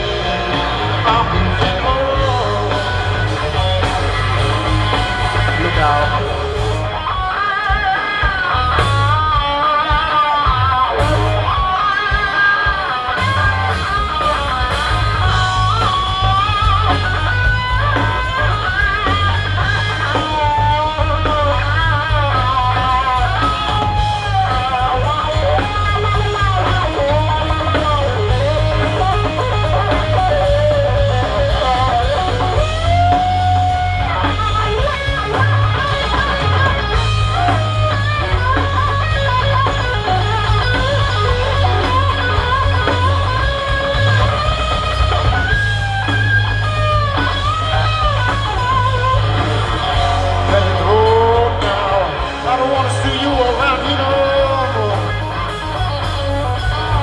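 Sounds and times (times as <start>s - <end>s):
electric guitar lead with bends: 0.0s - 57.0s
heavy bass line: 0.0s - 57.0s
rock band playing: 0.0s - 57.0s.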